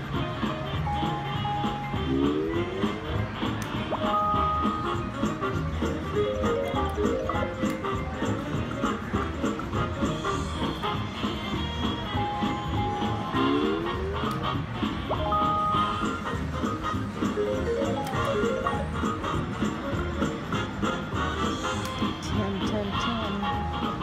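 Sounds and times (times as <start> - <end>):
slot machine music and jingles: 3.9 - 5.3, 6.2 - 7.7, 15.1 - 19.5.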